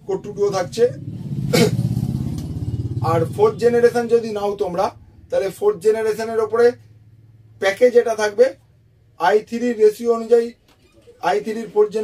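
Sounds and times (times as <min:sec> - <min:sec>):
vehicle engine pulsing hum: 0:00.0 - 0:12.0.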